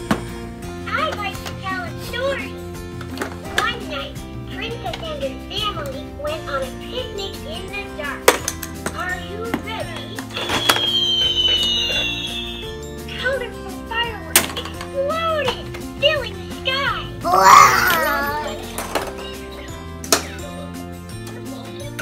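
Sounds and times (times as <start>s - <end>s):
music: 0.0s - 22.0s
plastic toys clattering: 3.0s - 3.6s, 8.3s - 11.0s, 18.0s - 19.4s
falling whistle-like tone: 10.3s - 12.7s
young children babbling: 17.2s - 18.6s.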